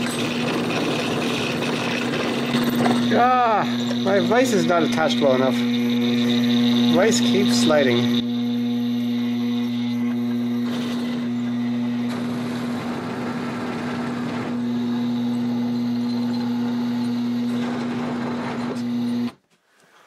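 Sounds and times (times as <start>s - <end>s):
gritty metal cutting noise: 0.0s - 19.3s
motor hum: 0.0s - 19.4s.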